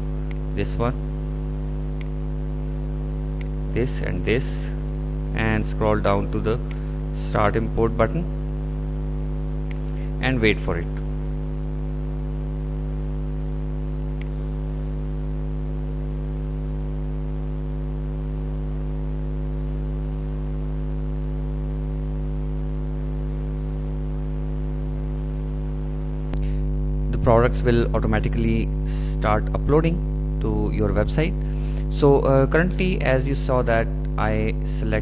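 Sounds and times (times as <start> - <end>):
electrical hum: 0.0 - 35.0
faint click: 14.2 - 14.4.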